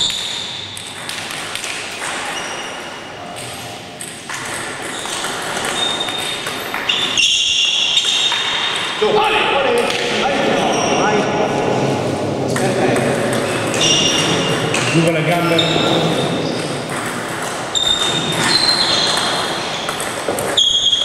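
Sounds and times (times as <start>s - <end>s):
voices: 9.0s - 16.6s.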